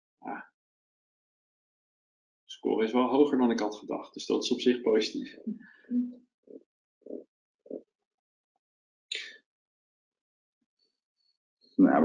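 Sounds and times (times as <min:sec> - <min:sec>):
person speaking: 0:02.5 - 0:06.1, 0:11.8 - 0:12.0.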